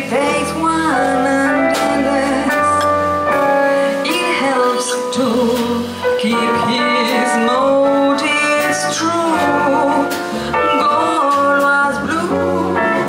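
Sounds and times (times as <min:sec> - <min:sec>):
jazz combo playing: 0:00.0 - 0:13.0.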